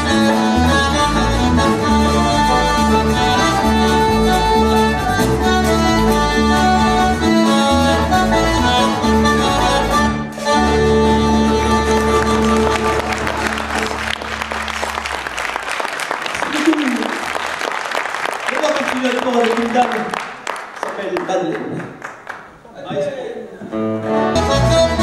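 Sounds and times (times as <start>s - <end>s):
banjo: 0.0s - 14.7s
button accordion: 0.0s - 15.4s, 24.0s - 25.0s
bass notes: 0.0s - 15.8s, 23.7s - 25.0s.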